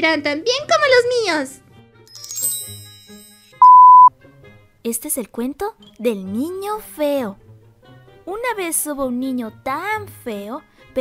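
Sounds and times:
loud bleep tone: 3.6 - 4.1.

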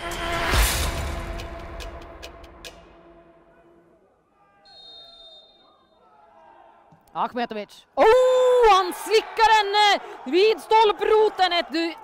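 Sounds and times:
faint high whistle: 4.6 - 6.1.

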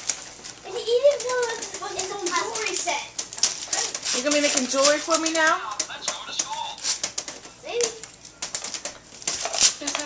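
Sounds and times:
wrapping paper rustling and tearing: 0.0 - 10.0.

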